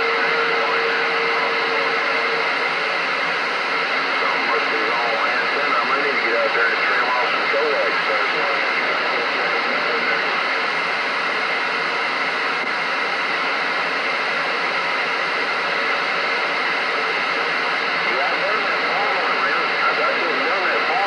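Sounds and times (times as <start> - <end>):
radio static hiss: 0.0 - 21.0.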